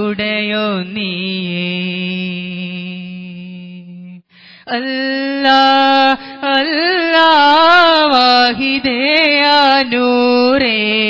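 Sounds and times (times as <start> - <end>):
person singing devotional song: 0.0 - 11.0.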